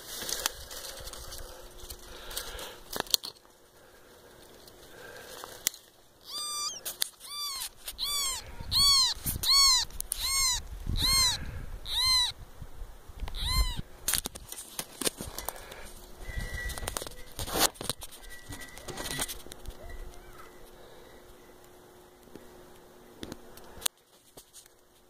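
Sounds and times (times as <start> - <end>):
animal high calls: 6.2 - 12.4, 13.3 - 13.9.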